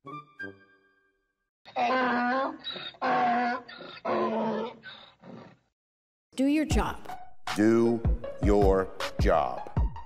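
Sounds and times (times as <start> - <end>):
donkey braying: 1.7 - 5.6.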